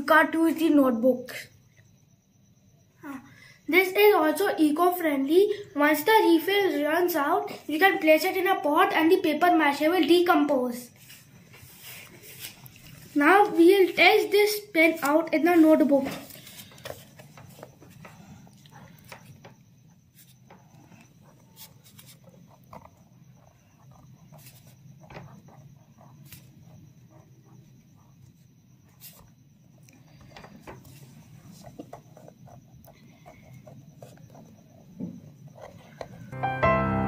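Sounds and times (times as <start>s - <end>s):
pen scratching on paper: 20.1s - 29.4s, 30.9s - 36.3s
piano music: 36.3s - 37.0s.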